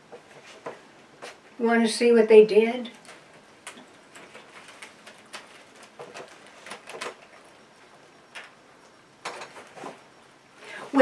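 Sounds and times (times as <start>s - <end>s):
wicker basket clicks and rustles: 2.9s - 7.6s.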